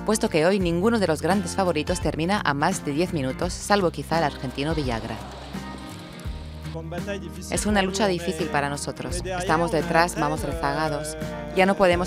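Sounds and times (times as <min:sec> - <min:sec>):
background music with low bass: 0:00.0 - 0:12.0
rally car hissing on dirt track: 0:04.8 - 0:06.7.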